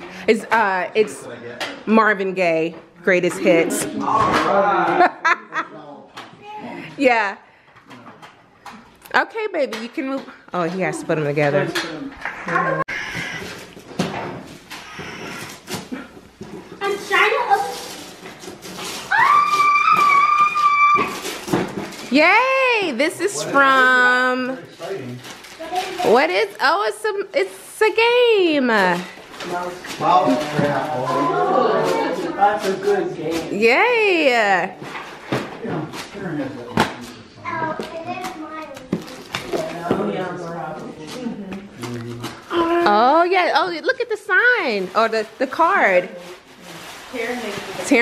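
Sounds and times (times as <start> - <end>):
children's voices: 25.6 - 26.1, 37.4 - 39.6.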